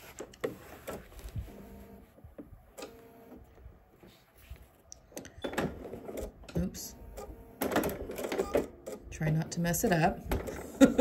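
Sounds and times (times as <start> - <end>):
fabric rustling: 0.0 - 2.2, 3.9 - 4.9.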